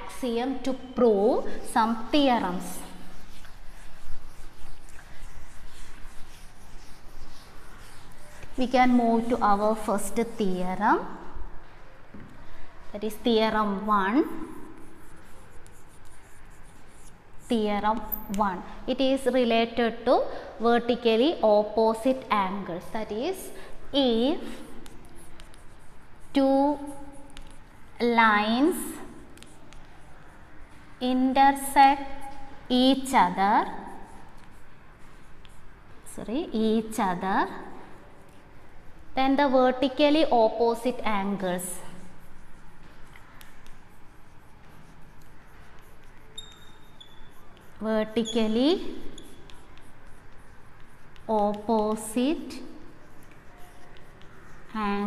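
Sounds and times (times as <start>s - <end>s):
chalk scratching on blackboard: 0.6s - 11.6s, 12.8s - 19.4s, 21.9s - 55.0s
sharp chalk taps: 1.4s - 10.9s, 12.1s - 18.6s, 24.0s - 38.8s, 39.9s - 55.0s.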